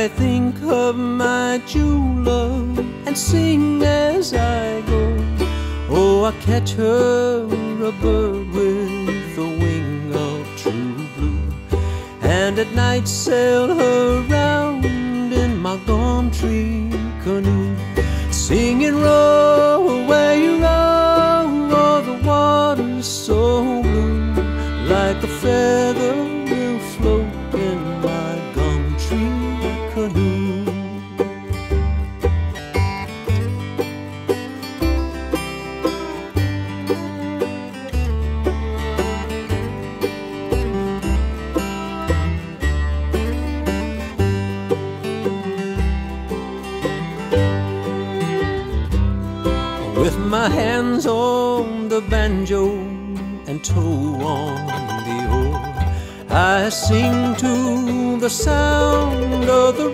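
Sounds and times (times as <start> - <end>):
acoustic guitar picking: 0.0 - 59.9
banjo picking: 0.0 - 59.9
sliding lead melody: 0.0 - 59.9
steady bass line: 0.0 - 59.9.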